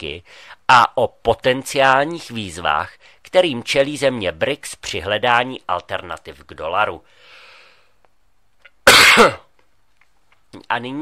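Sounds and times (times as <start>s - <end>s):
man clearing his throat: 8.8s - 9.5s.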